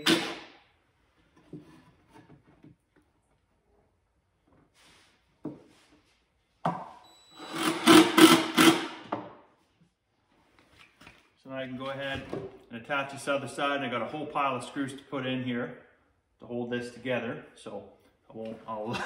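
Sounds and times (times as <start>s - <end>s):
cordless drill driving screw: 7.4s - 9.1s.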